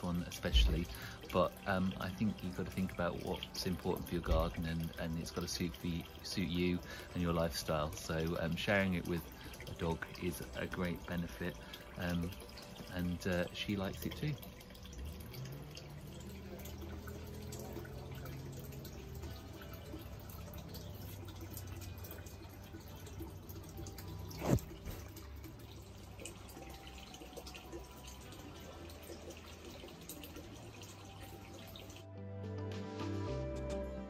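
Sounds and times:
water trickling: 0.0 - 32.1
soft background music: 0.0 - 34.0.

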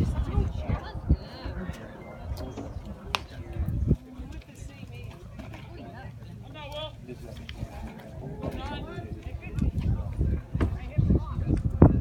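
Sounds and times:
spectators chatting: 0.0 - 12.0.

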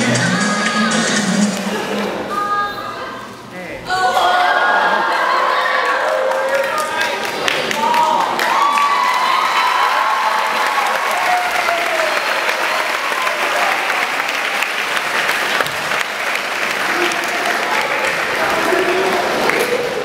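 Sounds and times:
audience applauding: 5.1 - 20.0.

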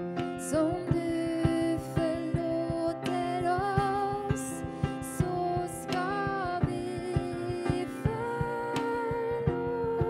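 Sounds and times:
drums played with soft mallets: 0.0 - 10.0.

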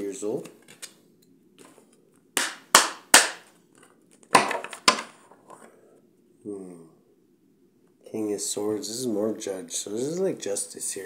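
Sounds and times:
cards slapped on table: 2.4 - 3.5.

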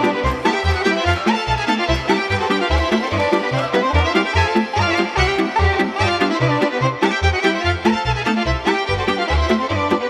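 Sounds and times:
violin melody: 0.0 - 10.0.

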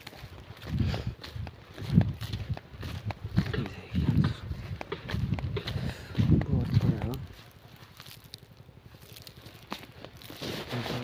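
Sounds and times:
footsteps on dry soil: 0.0 - 11.0
person talking: 3.4 - 4.6, 5.7 - 7.4.

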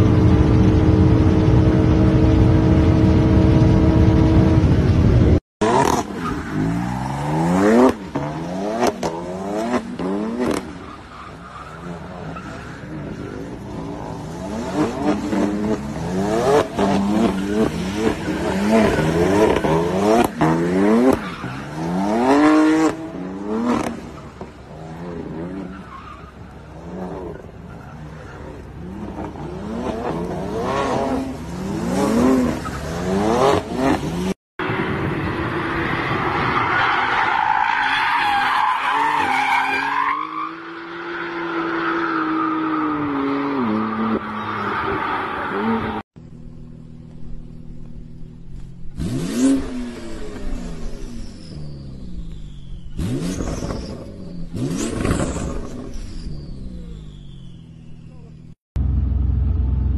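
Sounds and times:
car engine revving: 43.5 - 59.9.

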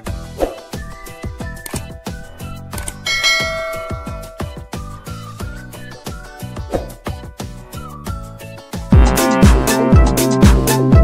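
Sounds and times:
background music with drum beat: 0.0 - 11.0
bell chime ding: 3.1 - 4.6.

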